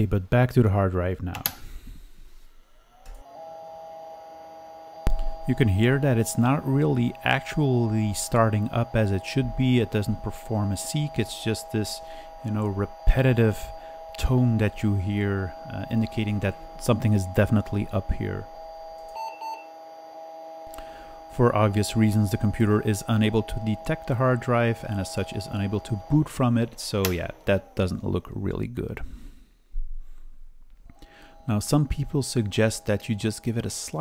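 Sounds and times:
hard drive whine: 0:00.0 - 0:34.0
steady electronic tone: 0:02.3 - 0:28.8, 0:30.9 - 0:34.0
short beeps: 0:19.0 - 0:19.8.

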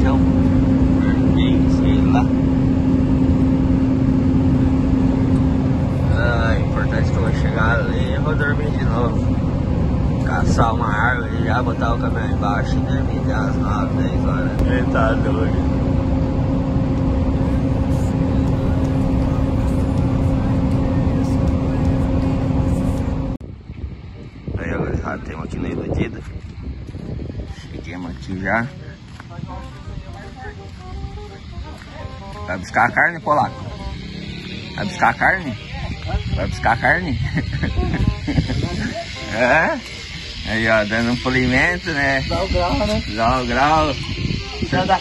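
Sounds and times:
road rumble: 0:00.0 - 0:45.0
truck engine drone: 0:00.0 - 0:45.0.

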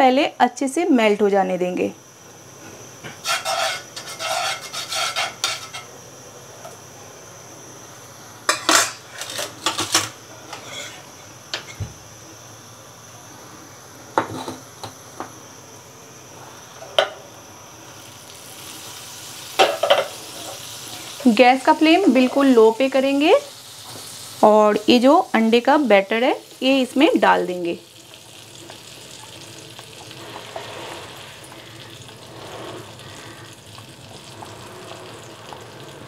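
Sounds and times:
metal utensil scraping frying pan: 0:03.2 - 0:05.9, 0:10.5 - 0:11.1
butter sizzling softly: 0:10.2 - 0:36.0.

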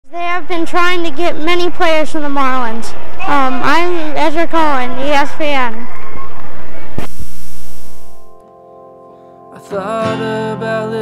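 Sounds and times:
tape hiss: 0:02.7 - 0:09.6
mains hum: 0:02.9 - 0:08.3
buzz of steady tones: 0:05.7 - 0:08.4.

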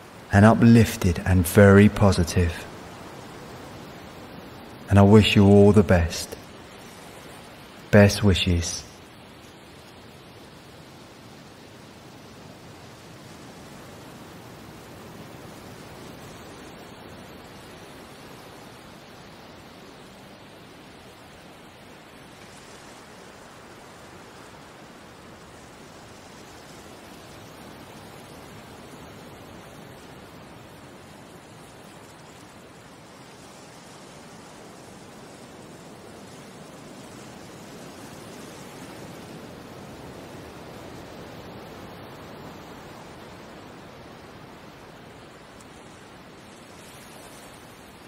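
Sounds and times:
sea waves washing: 0:12.9 - 0:48.0.

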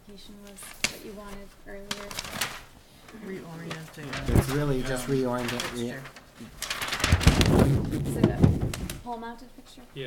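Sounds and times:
paper rustling: 0:00.3 - 0:09.1.

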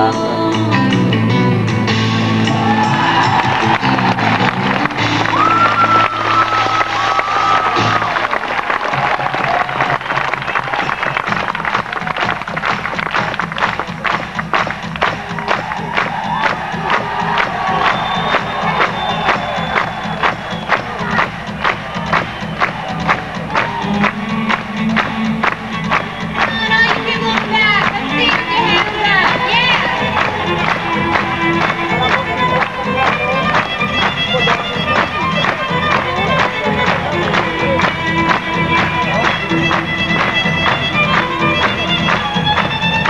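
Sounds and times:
live band playing: 0:00.0 - 0:43.0
crowd cheering and whistling: 0:02.1 - 0:43.0.

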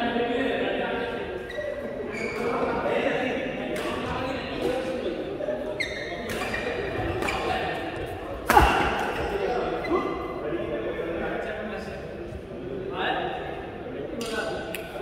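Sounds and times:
rackets hitting shuttlecock: 0:03.7 - 0:04.9.

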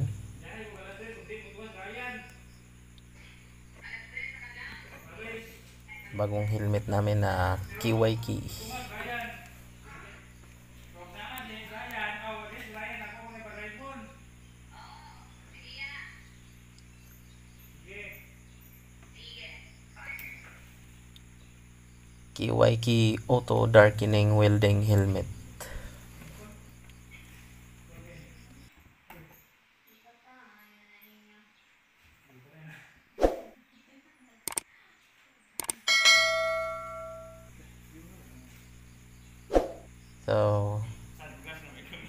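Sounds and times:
low hum: 0:00.0 - 0:11.0, 0:35.6 - 0:41.3
low steady hum: 0:00.0 - 0:28.7, 0:35.7 - 0:42.0
short clicks: 0:34.5 - 0:34.7, 0:35.6 - 0:35.8
bell ding: 0:35.9 - 0:37.5.

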